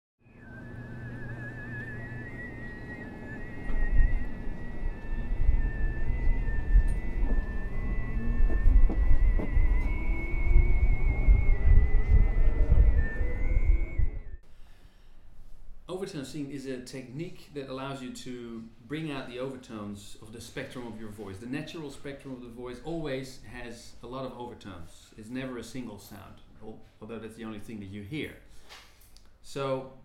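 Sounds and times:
metro train rumble: 0:02.0 - 0:14.2.

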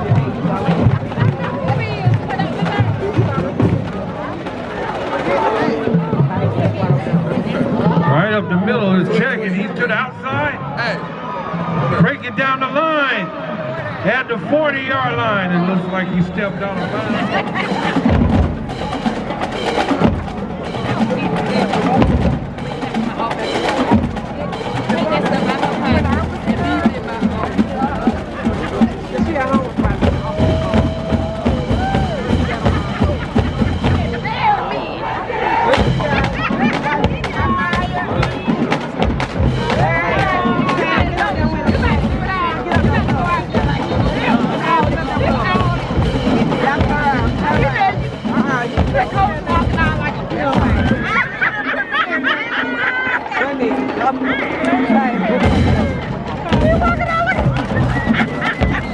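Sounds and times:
crowd voices: 0:00.0 - 0:58.9
marching drumline cadence: 0:00.0 - 0:58.9.

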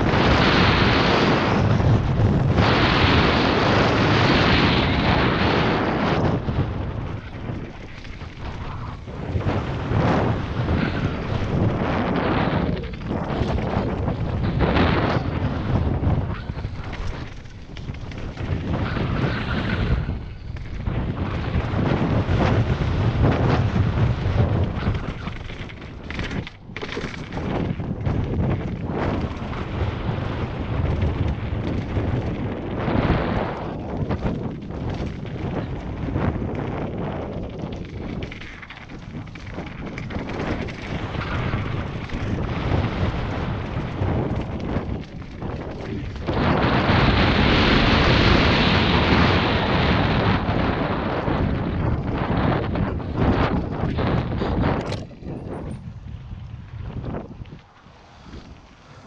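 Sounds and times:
bike tyres on dirt: 0:00.0 - 0:59.0
wind rushing over microphone: 0:00.0 - 0:59.0
bike knocks and rattles: 0:06.0 - 0:47.0, 0:51.6 - 0:56.1.

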